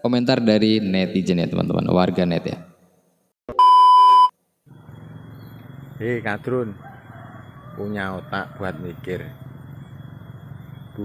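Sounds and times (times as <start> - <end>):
electronic beep: 3.5 - 4.3.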